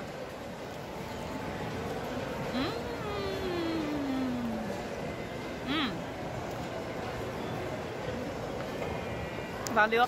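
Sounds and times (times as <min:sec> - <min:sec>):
faint distant voices: 0:00.0 - 0:10.0
food court hubbub: 0:00.0 - 0:10.0.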